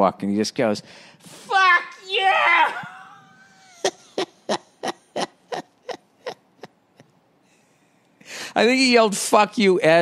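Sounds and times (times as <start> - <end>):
man laughing in breathy bursts: 3.3 - 7.8.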